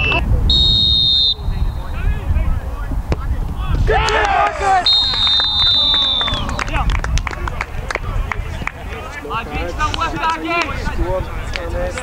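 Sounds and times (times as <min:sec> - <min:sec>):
long whistle blast: 0:00.0 - 0:01.9, 0:04.8 - 0:06.6
wind rumble on microphone: 0:00.0 - 0:12.0
players shouting and cheering: 0:01.4 - 0:12.0.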